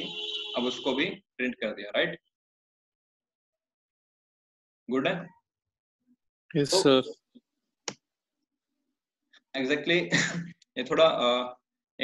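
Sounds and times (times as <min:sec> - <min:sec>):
person speaking: 0:06.6 - 0:07.2.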